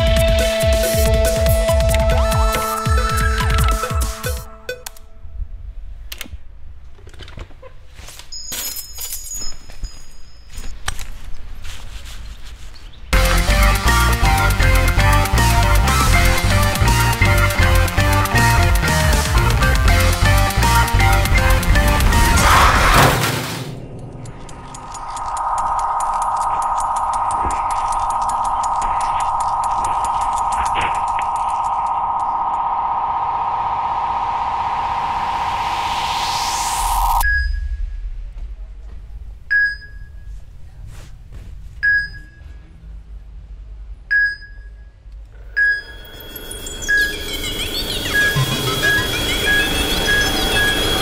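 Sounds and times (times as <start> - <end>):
rising electronic sweep: 13.2 - 38.4, 45.8 - 51.0
steady high electronic ringing: 23.8 - 38.2, 44.7 - 51.0
short electronic beeps: 36.0 - 37.9, 41.8 - 42.6, 45.5 - 51.0.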